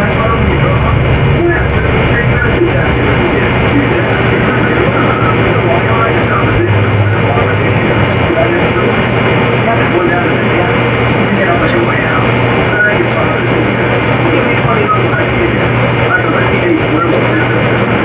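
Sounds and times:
babble of overlapping voices: 0:00.0 - 0:18.0
steady low hum: 0:00.0 - 0:18.0.

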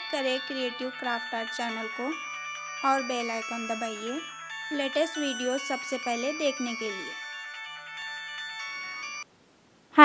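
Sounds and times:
electronic chiming jingle: 0:00.0 - 0:09.2.

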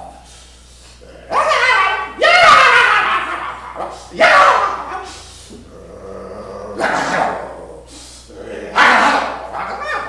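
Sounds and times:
man imitating dog barks: 0:01.2 - 0:05.7, 0:06.8 - 0:07.6, 0:08.7 - 0:10.0.

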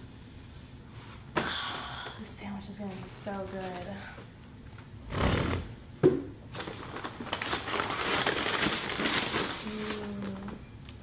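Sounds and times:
paper bag crinkling: 0:06.5 - 0:10.6.

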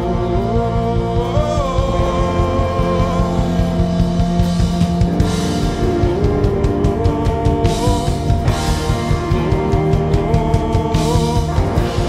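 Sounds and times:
acoustic and electric guitars: 0:00.0 - 0:12.0
man singing: 0:00.0 - 0:12.0
steady drum beat: 0:00.0 - 0:12.0.

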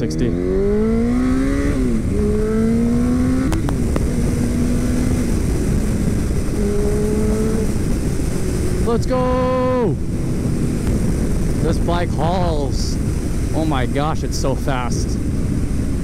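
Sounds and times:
motorcycle engine accelerating hard: 0:00.0 - 0:16.0.

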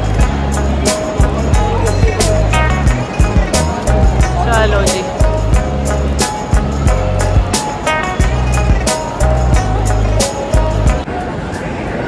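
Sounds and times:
background music with heavy bass: 0:00.0 - 0:11.4.

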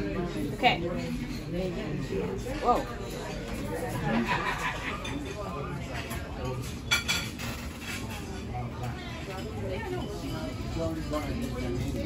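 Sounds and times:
murmur of voices: 0:00.0 - 0:12.0
cutlery clinking on plate: 0:04.8 - 0:12.0.

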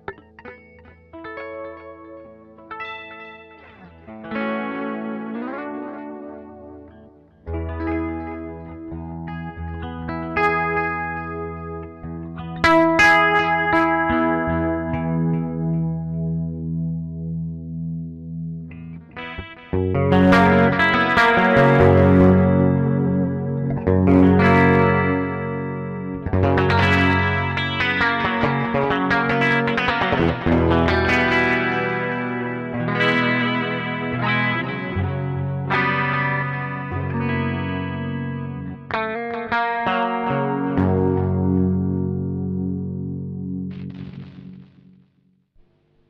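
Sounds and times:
electric guitar playing: 0:00.0 - 0:46.0.

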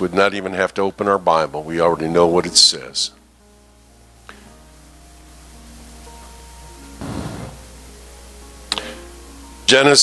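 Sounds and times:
short burst of noise: 0:07.0 - 0:07.8.

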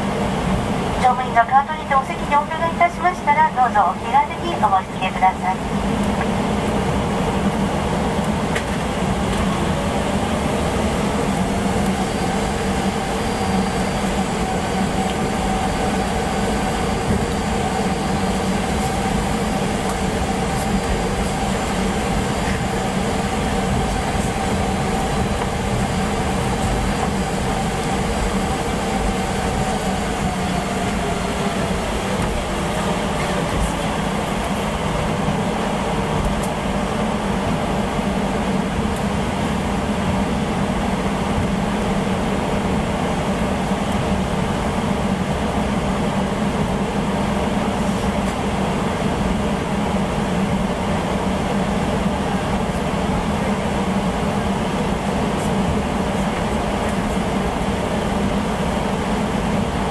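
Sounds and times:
high engine whine: 0:00.0 - 0:59.9
jet engine hum and rumble: 0:00.0 - 0:59.9.

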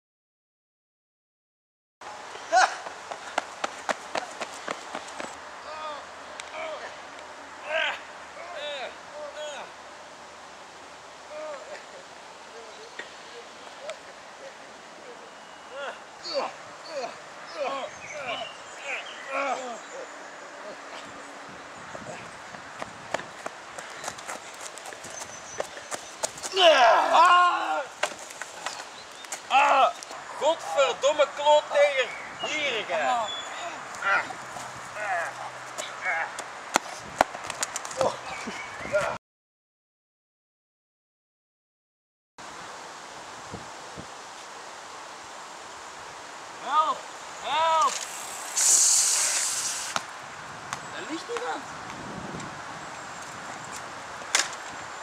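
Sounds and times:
footsteps running on grass: 0:02.9 - 0:05.4, 0:22.8 - 0:26.6
bicycle brake hiss: 0:47.7 - 0:50.1.

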